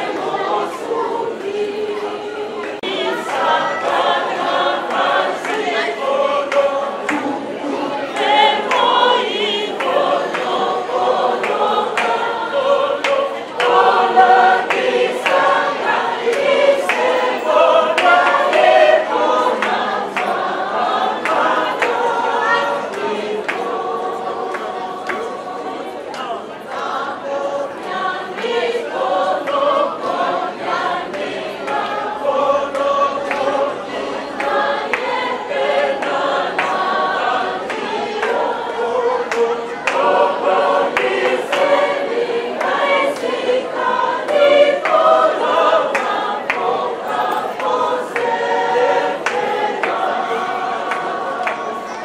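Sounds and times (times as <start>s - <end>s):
choir singing: 0.0s - 52.0s.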